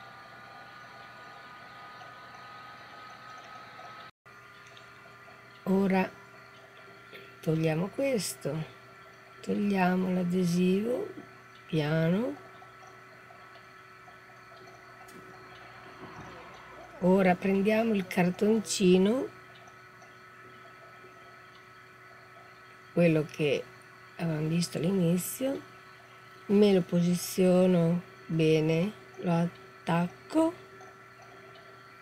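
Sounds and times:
faint high whine: 0.0 - 32.0
steady low hum: 0.0 - 32.0.

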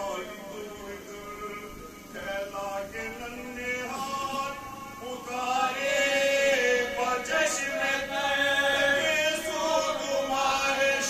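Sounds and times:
man singing into a microphone: 0.0 - 11.0
men singing along: 0.0 - 11.0.

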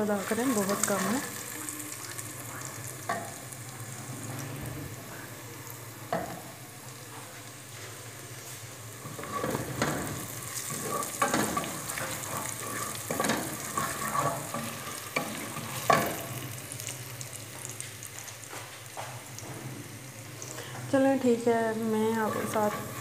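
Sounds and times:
food sizzling in oil: 0.0 - 23.0
wooden spoon scraping a pot: 9.0 - 16.2, 22.0 - 23.0.

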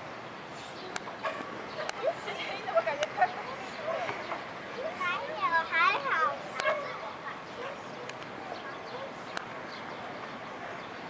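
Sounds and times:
children calling: 0.6 - 11.0.

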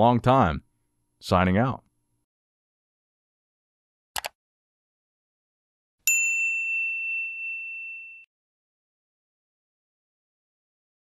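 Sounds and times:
notification bell ding: 6.1 - 8.3.

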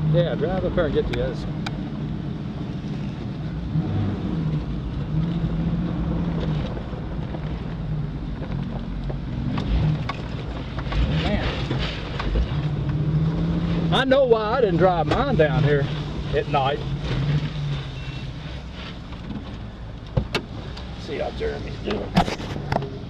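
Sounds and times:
knocks and rattles of vehicle: 0.0 - 23.0.

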